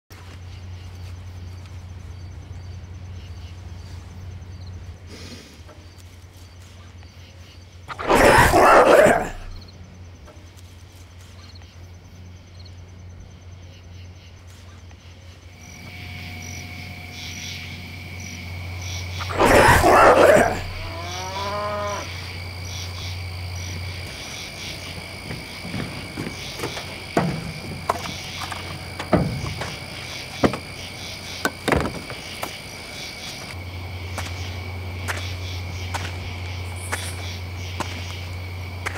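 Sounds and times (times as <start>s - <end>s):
night insects chirring: 0.1s - 38.9s.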